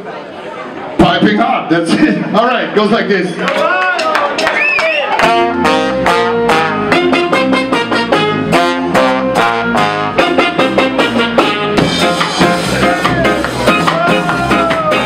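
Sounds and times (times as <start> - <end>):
ska band playing: 4.1 - 15.0.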